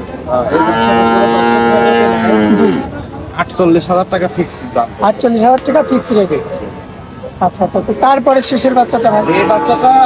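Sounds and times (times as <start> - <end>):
young bull mooing: 0.5 - 2.9.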